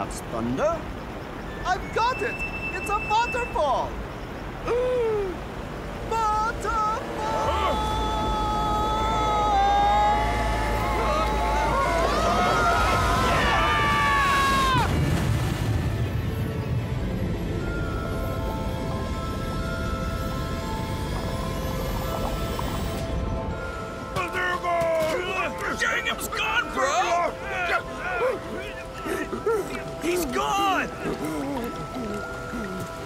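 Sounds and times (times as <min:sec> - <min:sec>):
low rush of water: 0:00.0 - 0:33.0
cartoon voices screaming: 0:06.9 - 0:15.0.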